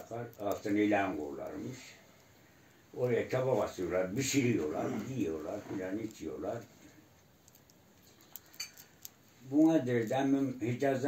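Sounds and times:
prayer beads clicking: 0.0s - 10.4s.

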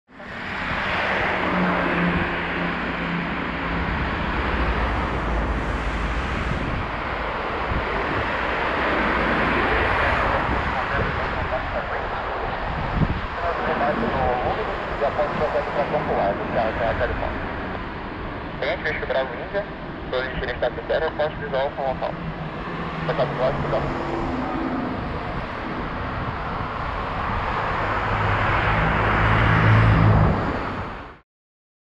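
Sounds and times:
distant jet engines: 0.1s - 31.2s
wind noise on microphone: 0.3s - 17.7s, 21.4s - 31.1s
radio voices: 6.9s - 26.6s.

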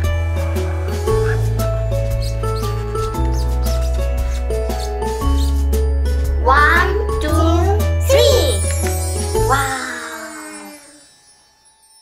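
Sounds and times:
upbeat background music: 0.0s - 12.0s
child exclaiming: 6.5s - 8.6s, 9.4s - 11.0s.

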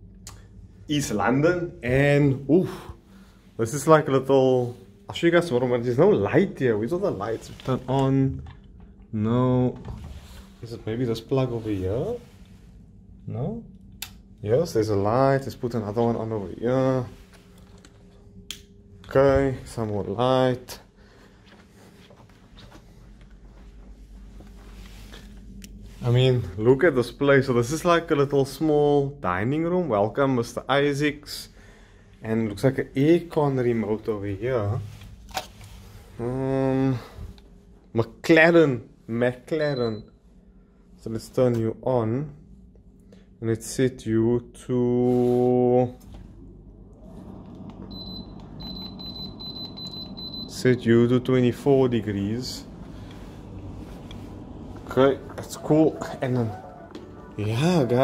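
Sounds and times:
air conditioner fan noise: 0.0s - 58.0s
low steady hum: 0.0s - 58.0s
high steady electronic beep: 39.7s - 40.1s, 47.9s - 50.8s.

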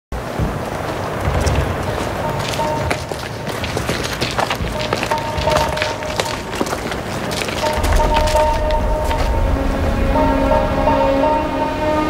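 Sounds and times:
steady background noise: 0.1s - 12.0s
footsteps on rubble: 0.2s - 9.8s
low thumps: 0.2s - 11.8s.

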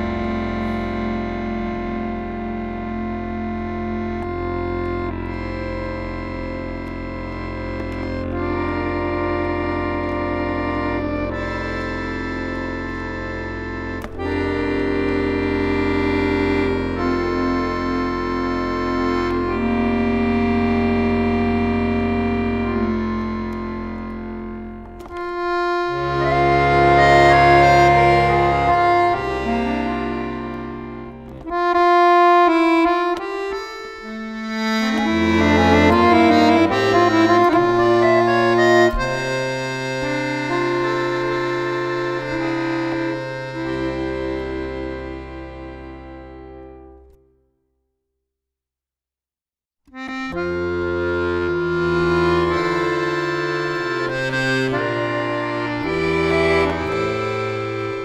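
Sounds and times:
button accordion playing slow piece: 0.0s - 47.4s, 49.9s - 58.0s.

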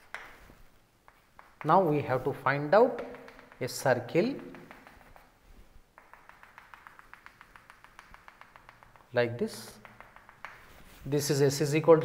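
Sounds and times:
chalk tapping on chalkboard: 0.0s - 11.4s.

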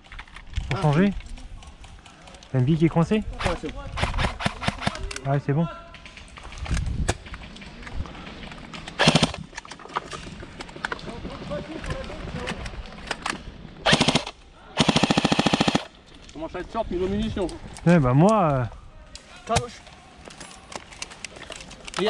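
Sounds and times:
airsoft gun firing bursts: 3.4s - 5.1s, 9.0s - 9.4s, 13.8s - 16.0s.

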